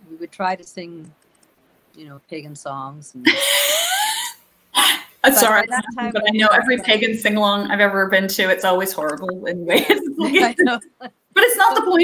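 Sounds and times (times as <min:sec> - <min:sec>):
woman laughing: 0:03.2 - 0:06.8, 0:09.6 - 0:11.1.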